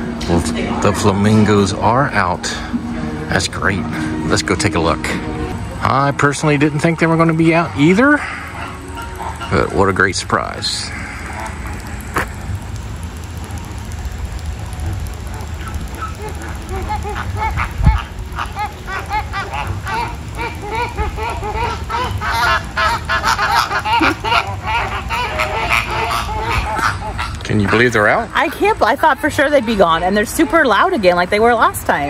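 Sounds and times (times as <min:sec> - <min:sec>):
flamingos honking: 0:00.0 - 0:32.0.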